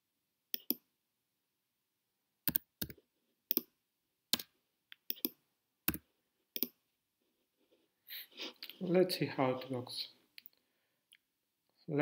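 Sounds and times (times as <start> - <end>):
keyboard and mouse clicks: 0.5 - 0.8, 2.4 - 3.7, 4.3 - 6.8.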